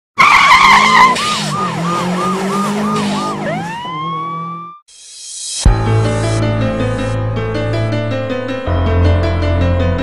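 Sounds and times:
siren-like wailing tone: 0.2s - 4.8s.

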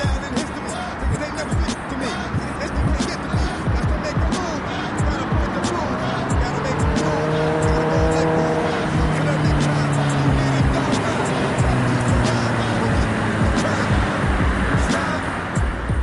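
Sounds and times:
motorcycle engine running: 0.0s - 16.0s
rap music with drum beat: 0.0s - 16.0s.

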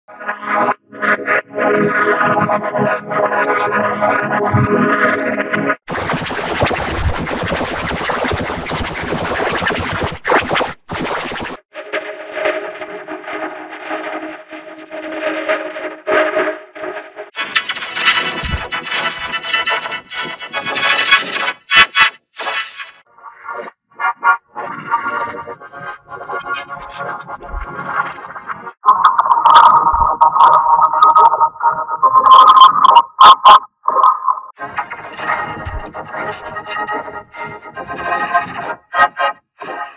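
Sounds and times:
distorted logo jingle music: 28.9s - 34.5s.

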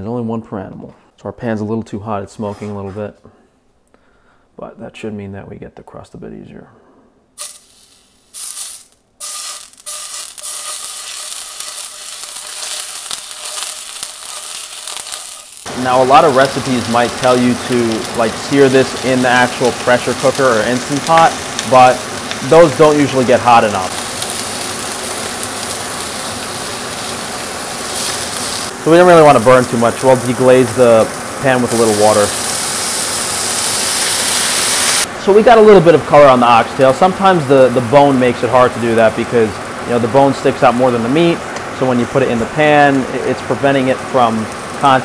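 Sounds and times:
meat sizzling in a frying pan: 7.4s - 45.0s.

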